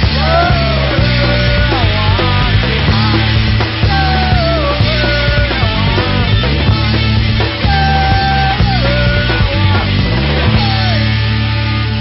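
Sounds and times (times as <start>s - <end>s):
person singing: 0.0s - 12.0s
pop punk band playing live: 0.0s - 12.0s.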